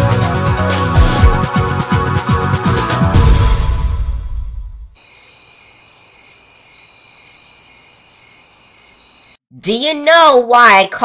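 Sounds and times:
crickets chirring: 5.0s - 9.4s.

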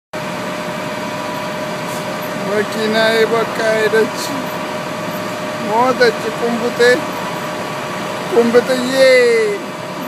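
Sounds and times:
steady whine: 0.2s - 10.0s
truck engine running: 0.2s - 10.0s.

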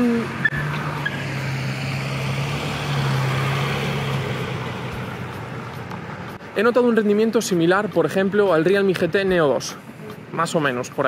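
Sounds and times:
car driving past: 0.0s - 6.6s.

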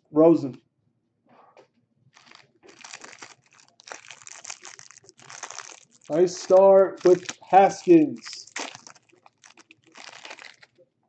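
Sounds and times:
plastic wrapper crinkling: 2.1s - 10.8s.

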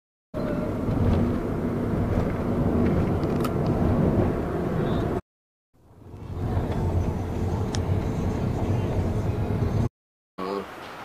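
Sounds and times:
vehicle engine and tyres rumbling: 0.4s - 5.2s, 5.8s - 9.9s.

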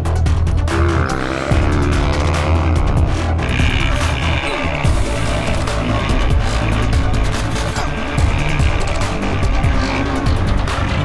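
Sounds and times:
music with driving beat: 0.0s - 11.0s
motorcycle engines revving: 0.4s - 11.0s.

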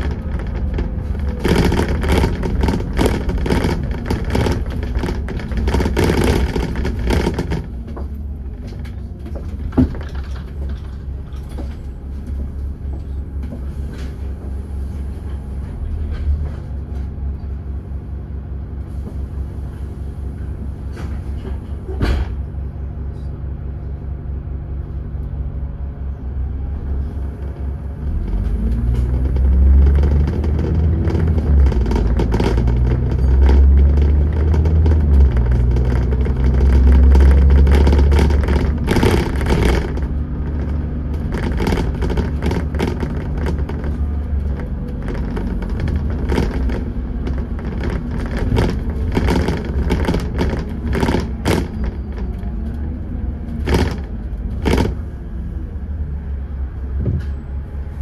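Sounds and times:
bus body rattling and knocking: 0.0s - 58.0s
bus diesel engine rumble: 0.0s - 58.0s.

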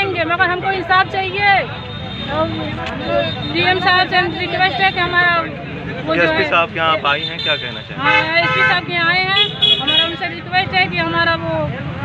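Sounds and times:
woman speaking: 8.0s - 11.7s.

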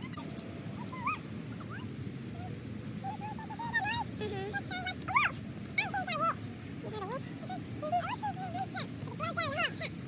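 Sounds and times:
children calling and squealing: 0.0s - 10.0s
low background rumble: 0.0s - 10.0s.

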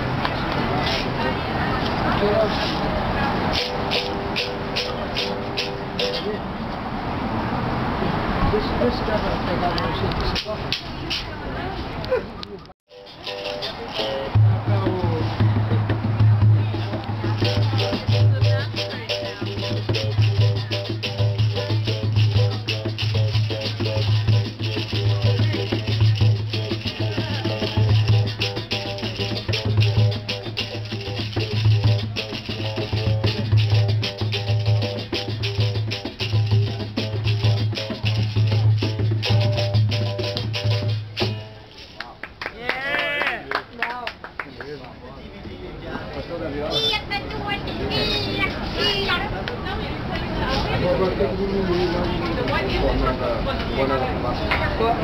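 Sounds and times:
hand drum: 3.4s - 6.4s, 12.9s - 41.9s
shaker rattling: 3.5s - 6.3s, 12.9s - 42.0s.

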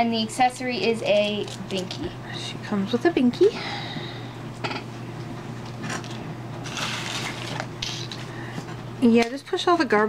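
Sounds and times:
plastic packaging crinkling: 1.1s - 2.0s, 5.9s - 8.3s.

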